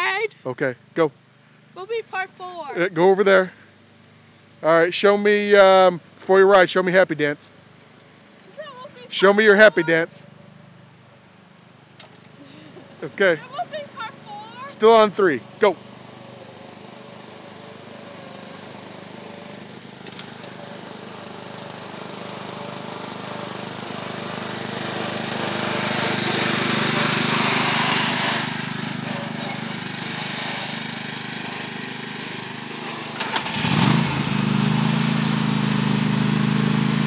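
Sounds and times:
riding mower engine running: 0.0s - 37.0s.

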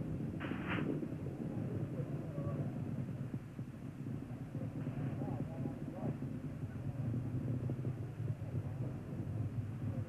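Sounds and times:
broadcast channel hum and hiss: 0.0s - 10.0s.

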